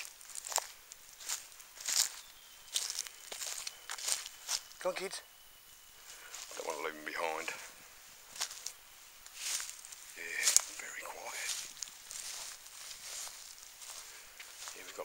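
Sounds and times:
footsteps crunching on forest litter: 0.0s - 15.0s
person speaking: 6.4s - 7.8s, 10.1s - 11.8s, 14.6s - 15.0s.

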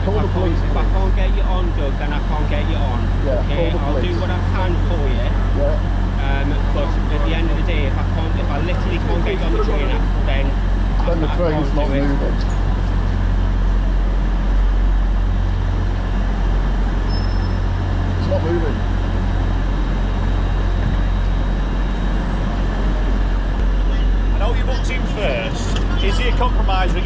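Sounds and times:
distant voices: 0.0s - 27.0s
train humming and rumbling: 0.0s - 27.0s.

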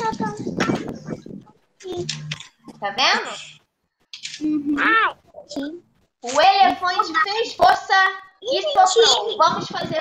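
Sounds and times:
children's voices over video call: 0.0s - 3.6s, 4.2s - 10.0s
clattery noise: 0.1s - 4.5s.

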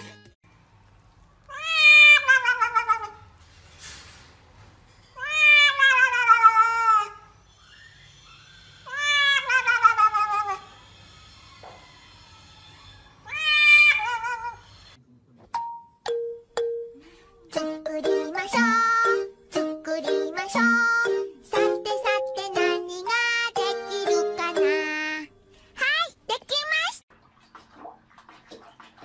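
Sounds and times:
cat yowling: 8.8s - 10.7s, 11.6s - 14.6s.

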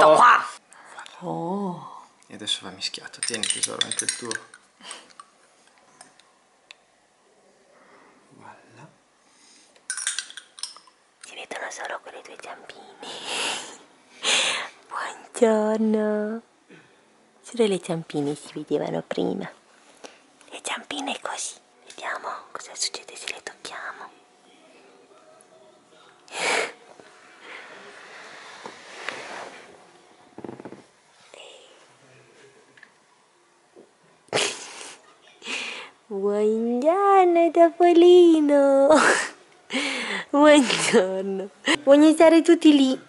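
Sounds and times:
metal spoon clinking on ceramic plate: 3.2s - 4.6s, 9.9s - 10.9s.

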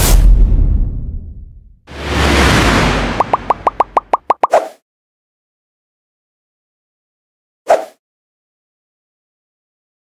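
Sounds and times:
whoosh: 0.0s - 4.3s
short rising pops: 2.4s - 4.6s.

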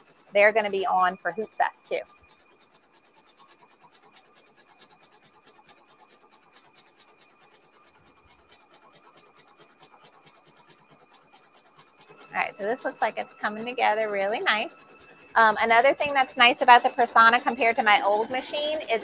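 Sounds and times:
thin steady tone: 0.0s - 19.0s
embroidery machine needle ticking: 0.4s - 19.0s.

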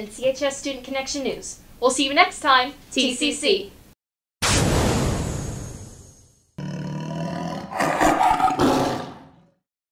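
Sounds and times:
tiger roar: 6.6s - 9.6s.

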